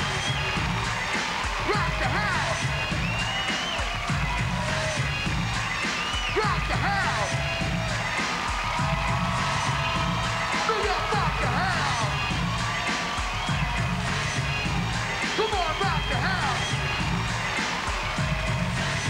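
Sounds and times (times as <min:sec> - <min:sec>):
crowd cheering: 0:00.0 - 0:19.0
hip-hop beat over pa: 0:00.0 - 0:19.0.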